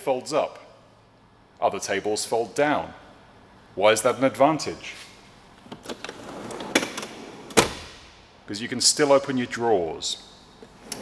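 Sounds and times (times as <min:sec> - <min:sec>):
metal drawer sliding open: 0:05.8 - 0:07.9.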